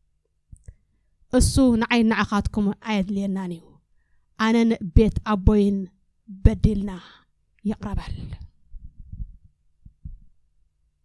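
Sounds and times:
faint low hum: 0.0s - 11.0s
microphone handling thuds: 8.0s - 10.4s.

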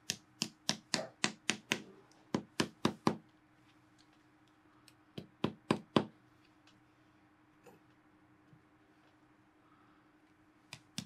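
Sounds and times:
hammer tapping tacks: 0.0s - 3.3s, 4.9s - 6.2s, 10.7s - 11.0s.

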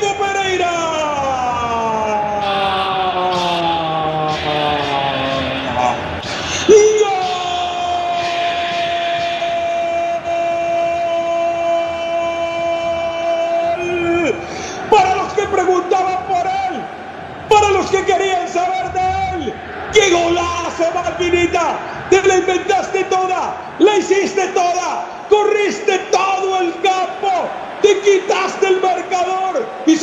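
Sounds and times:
commentator shouting goal: 0.0s - 30.0s.

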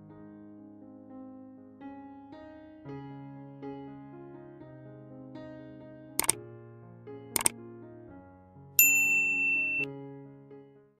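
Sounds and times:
notification bell ding: 8.8s - 9.9s.

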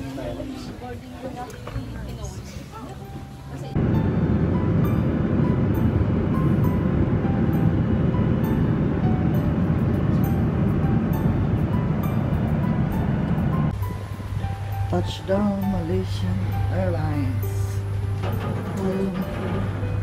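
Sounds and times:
airliner engines and rushing air: 3.7s - 15.2s, 15.8s - 20.0s.

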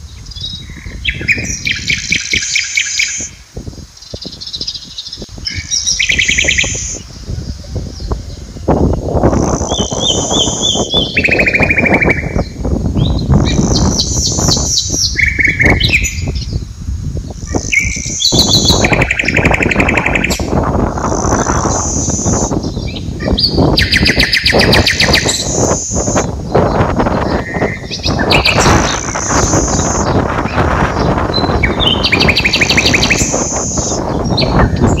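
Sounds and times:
songbirds singing: 0.0s - 35.0s
steady rushing noise: 0.0s - 35.0s.

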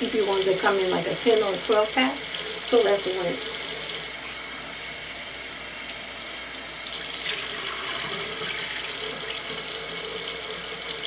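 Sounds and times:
face rinsed with washcloth: 0.0s - 11.0s.

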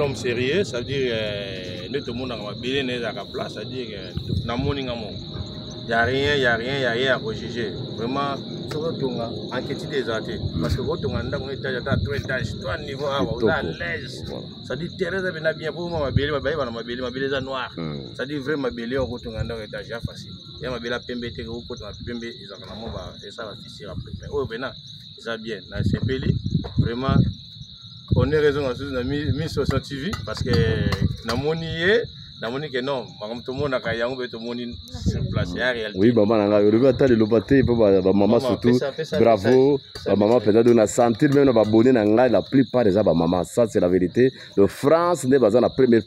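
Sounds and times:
people talking: 0.0s - 27.4s, 28.1s - 46.0s
crickets chirping: 0.0s - 46.0s
high-pitched insect trill: 0.0s - 46.0s.

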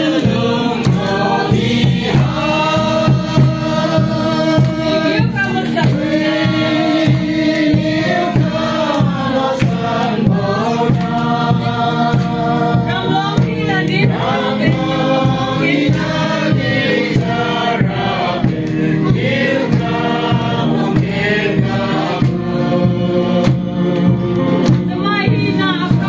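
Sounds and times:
group of men and women singing: 0.0s - 25.0s
hand-clapping steady beat: 0.0s - 26.0s.

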